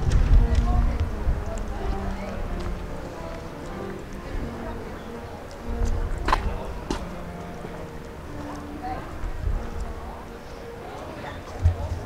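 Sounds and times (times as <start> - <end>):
footsteps on brick paving: 0.0 - 12.0.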